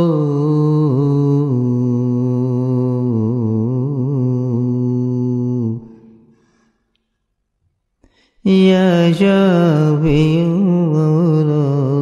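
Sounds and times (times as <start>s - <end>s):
man chanting: 0.0s - 6.1s, 8.4s - 12.0s.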